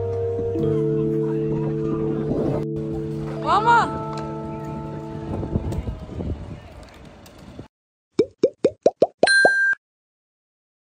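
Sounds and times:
bubbly pops sliding down: 8.2 - 9.3.

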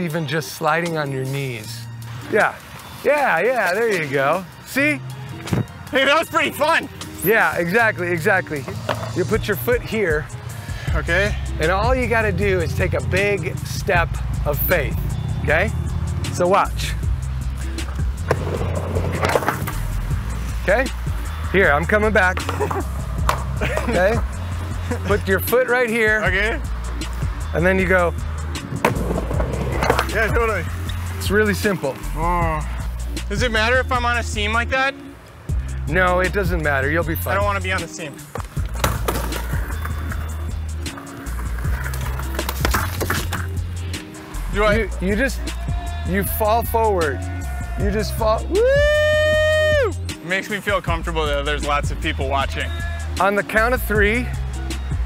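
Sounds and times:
background music: 0.0 - 55.0
skateboard wheels rolling: 17.8 - 25.1, 27.0 - 32.2, 38.2 - 44.5
skateboard clicks: 18.3 - 19.9, 41.6 - 43.5.

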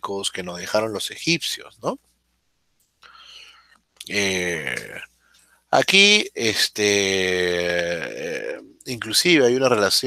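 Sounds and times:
man whispering: 0.0 - 2.0, 3.1 - 5.1, 5.8 - 10.0.

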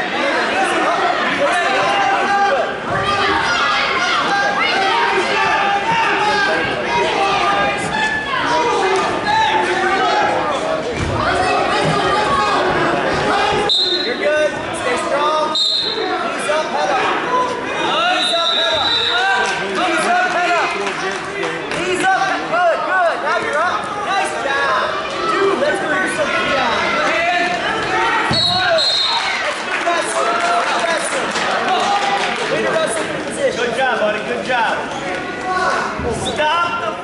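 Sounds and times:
people calling out in echoing gym: 0.0 - 20.8, 21.7 - 29.6, 33.8 - 37.0
whistle blasts: 13.7 - 14.1, 15.5 - 16.0, 18.1 - 19.2, 28.3 - 29.2.

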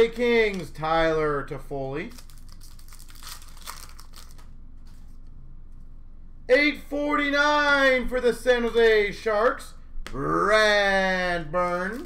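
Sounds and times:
cards crinkling and rustling: 0.0 - 0.8, 2.0 - 5.2.

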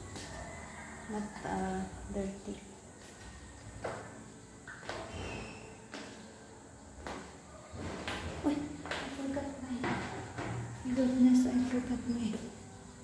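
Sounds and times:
footsteps on stairs: 8.0 - 11.2.

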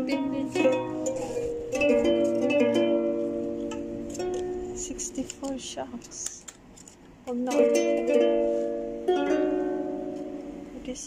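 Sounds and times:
ukulele chords strummed: 0.0 - 5.6, 7.3 - 10.8.

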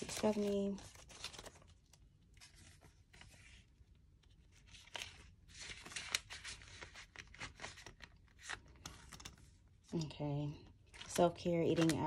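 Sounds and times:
paper banknotes rustling: 0.0 - 9.6, 10.8 - 12.0.

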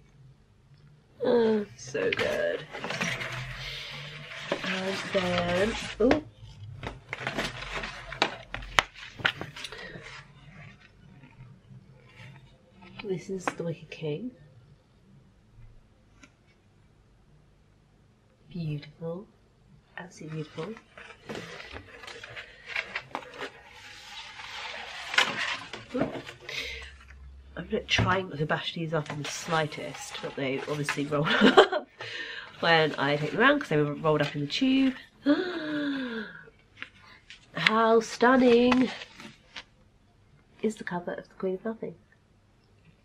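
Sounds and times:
paper crackling and rustling: 1.8 - 13.6, 20.3 - 27.2, 27.9 - 31.8, 32.6 - 35.0, 36.8 - 39.8.

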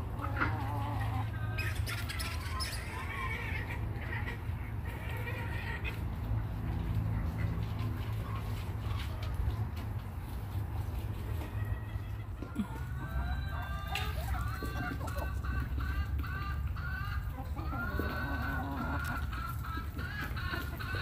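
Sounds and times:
chickens clucking: 0.0 - 21.0.

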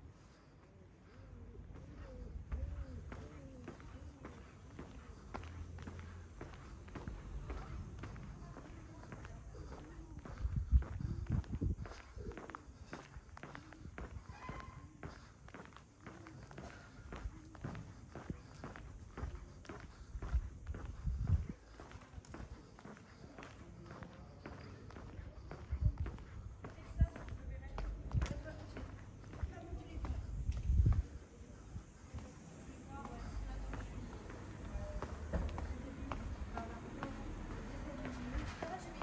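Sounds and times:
footsteps on paved street: 0.0 - 39.0.

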